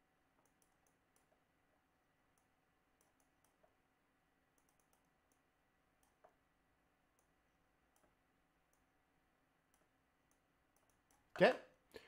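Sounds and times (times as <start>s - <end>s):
faint steady hum: 0.0s - 12.0s
faint clicks: 4.5s - 6.4s, 9.7s - 11.3s.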